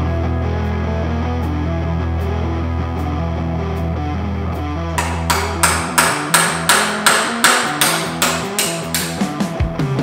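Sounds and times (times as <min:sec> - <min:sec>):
rock music: 0:00.0 - 0:10.0
hammer striking metal: 0:05.0 - 0:09.4.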